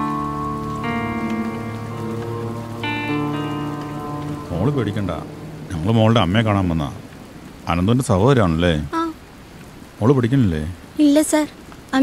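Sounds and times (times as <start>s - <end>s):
held music chords: 0.0s - 8.1s
steady rain falling: 0.0s - 12.0s
person speaking: 4.3s - 9.2s.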